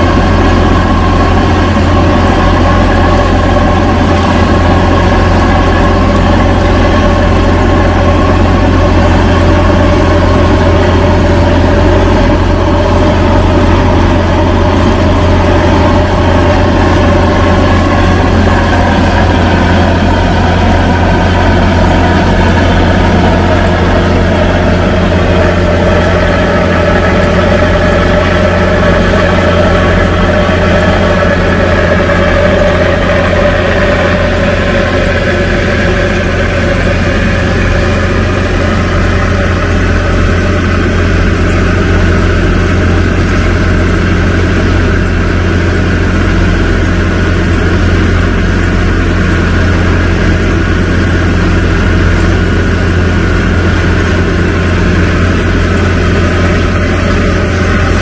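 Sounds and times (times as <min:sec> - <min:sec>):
tractor diesel engine droning: 0:00.0 - 0:58.0.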